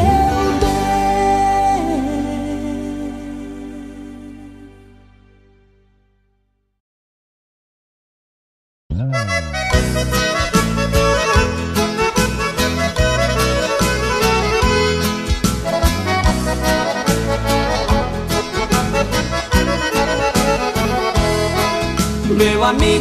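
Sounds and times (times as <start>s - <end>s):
accordion melody: 0.0s - 6.0s, 9.0s - 23.0s
bass: 0.0s - 6.8s, 8.9s - 23.0s.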